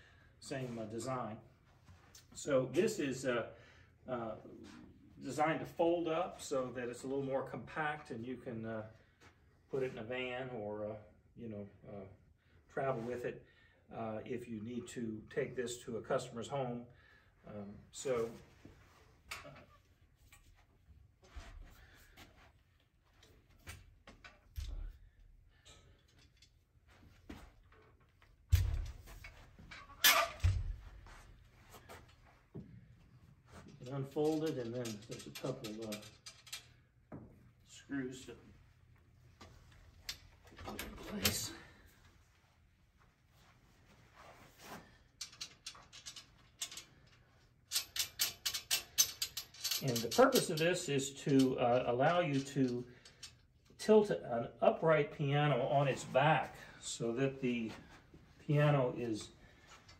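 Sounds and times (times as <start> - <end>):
metal parts clicking and rattling: 27.6 - 31.2, 33.5 - 36.9, 40.0 - 41.7, 45.1 - 53.4
metal frame clicking: 28.5 - 30.8
metal frame clanks: 28.5 - 31.2, 47.7 - 53.4.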